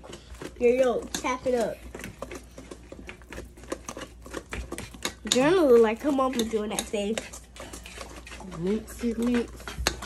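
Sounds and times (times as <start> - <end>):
whisks clicking against bowls: 0.0 - 10.0.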